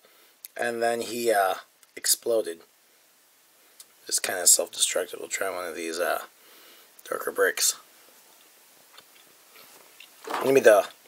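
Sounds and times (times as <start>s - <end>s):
faint chewing: 8.4s - 10.2s.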